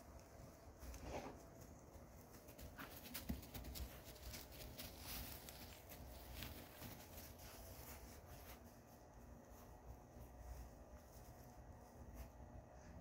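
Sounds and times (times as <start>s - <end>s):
footsteps crunching on straw: 0.4s - 12.4s.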